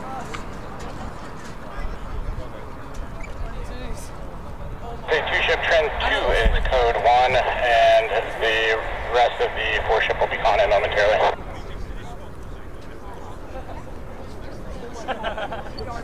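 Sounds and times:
voice over a radio: 5.0s - 11.9s.

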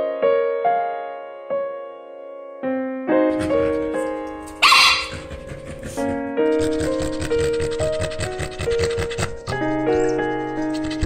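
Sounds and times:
dog barking: 3.3s - 11.0s
keyboard music with held notes: 5.8s - 11.0s.

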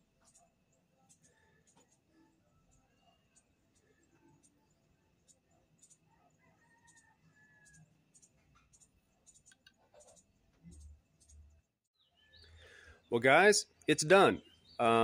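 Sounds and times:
faint high chirps: 0.0s - 11.4s.

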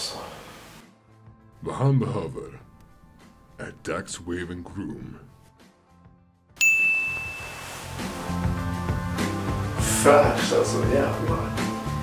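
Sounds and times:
music: 0.0s - 12.0s
bright ding: 6.6s - 8.1s.

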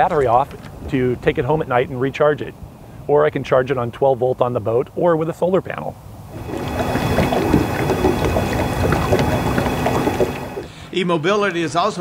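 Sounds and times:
wind buffeting microphone: 6.1s - 10.7s
water rushing around boat: 6.3s - 10.7s
faint steady tones: 6.3s - 10.9s.

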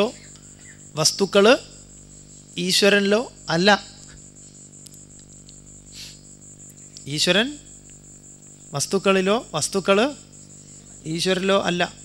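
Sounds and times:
high-pitched pulsing chirp: 0.0s - 4.2s
steady low hum: 0.0s - 12.0s.

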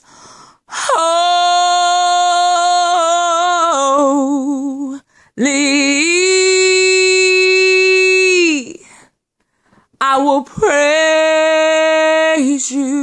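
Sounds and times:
woman singing a cappella: 0.6s - 9.0s, 10.0s - 13.0s.

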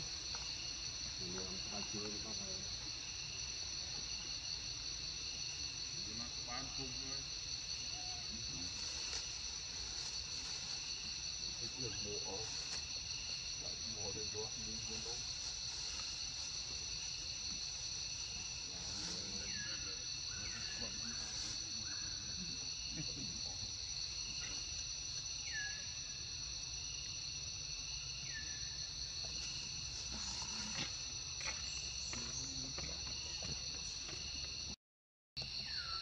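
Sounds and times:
insect chorus: 0.0s - 34.8s, 35.4s - 36.0s.

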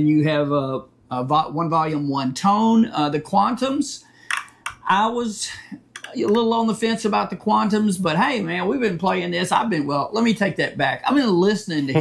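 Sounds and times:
man speaking: 4.8s - 12.0s.

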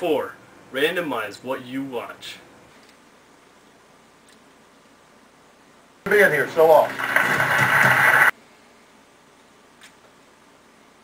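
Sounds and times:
loud dense television noise: 6.1s - 8.4s.

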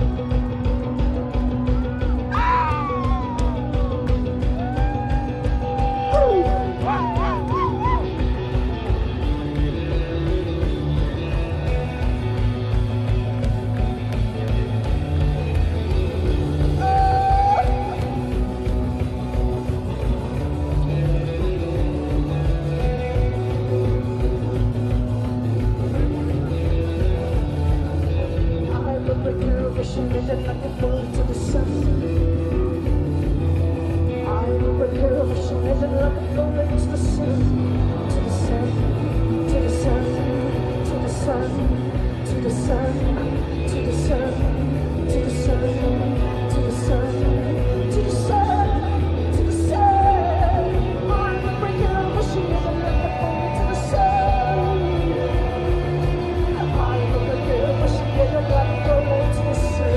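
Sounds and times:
rock band playing live: 0.0s - 59.9s
woman singing: 28.6s - 33.5s, 34.1s - 59.9s.

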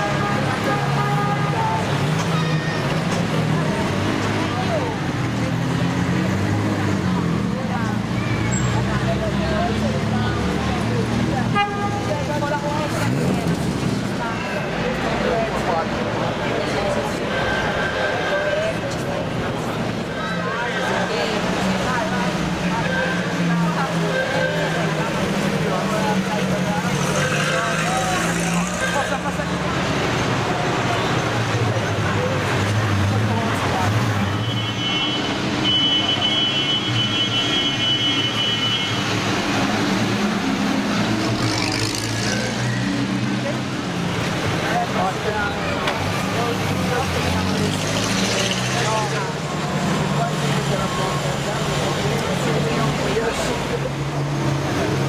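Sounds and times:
spectators' voices: 0.0s - 35.7s, 38.9s - 55.0s
car engines passing by: 0.0s - 55.0s.

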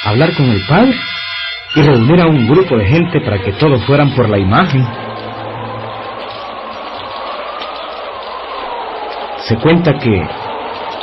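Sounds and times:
heavy rain hiss: 2.4s - 11.0s.

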